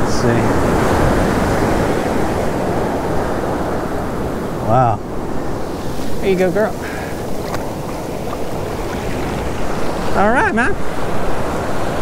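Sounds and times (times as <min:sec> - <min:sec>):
surf washing over sand: 0:00.0 - 0:12.0.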